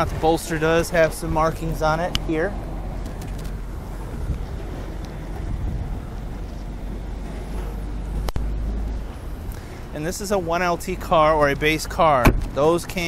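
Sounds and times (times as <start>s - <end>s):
low outdoor rumble: 0.0s - 13.0s.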